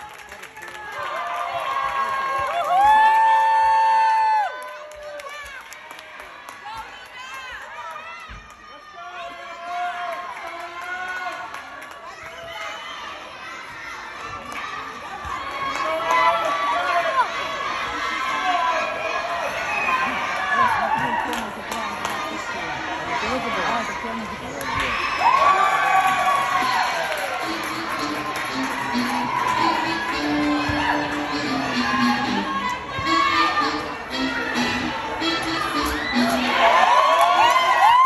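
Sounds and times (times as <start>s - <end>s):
crowd murmur: 16.3s - 25.0s, 26.6s - 37.1s
children shouting and cheering: 24.7s - 38.0s.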